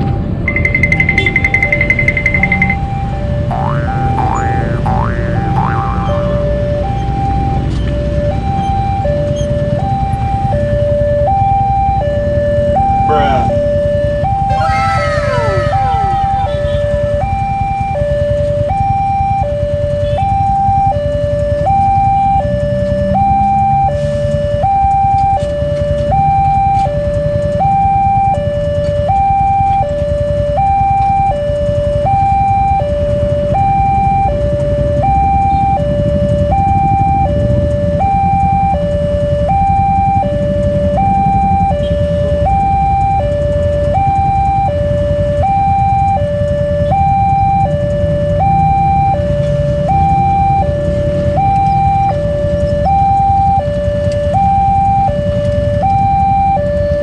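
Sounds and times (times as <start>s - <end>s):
two-tone crossing alarm: 0.0s - 57.0s.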